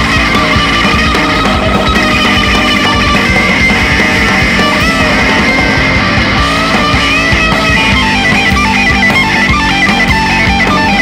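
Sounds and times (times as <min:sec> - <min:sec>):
gliding lead guitar notes: 0:00.0 - 0:11.0
psychedelic rock band: 0:00.0 - 0:11.0.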